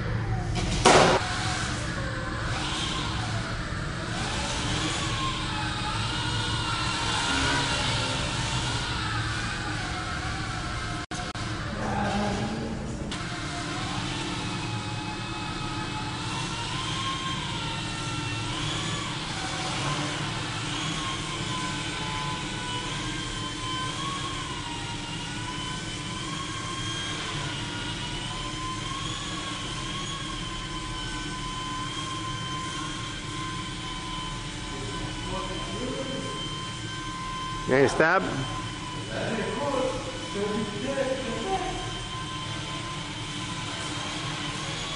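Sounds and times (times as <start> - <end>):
model helicopter whine: 0.0 - 44.9.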